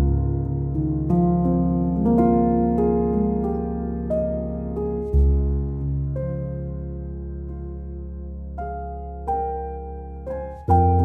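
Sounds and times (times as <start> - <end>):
slow calm piano music: 0.0 - 11.0.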